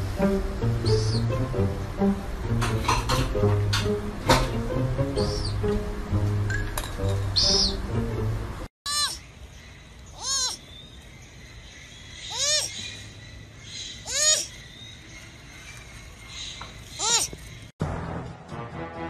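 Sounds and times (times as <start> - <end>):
background music: 0.0 - 8.7, 17.8 - 19.0
baby sloth squealing: 8.9 - 9.2, 10.1 - 10.6, 12.3 - 12.8, 14.0 - 14.5, 17.0 - 17.3.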